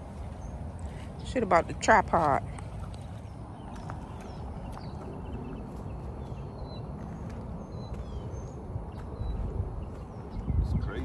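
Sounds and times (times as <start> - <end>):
wind rumble on microphone: 2.3 - 11.0.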